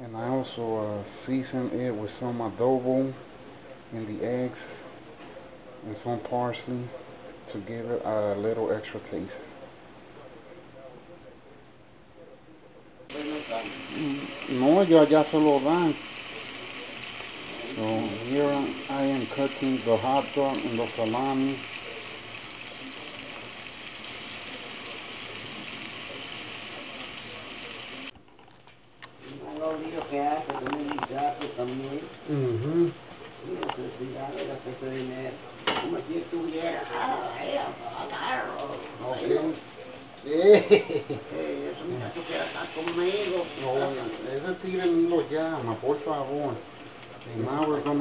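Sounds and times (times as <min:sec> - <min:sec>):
meat sizzling in hot oil: 0:13.1 - 0:28.2, 0:29.4 - 0:48.0.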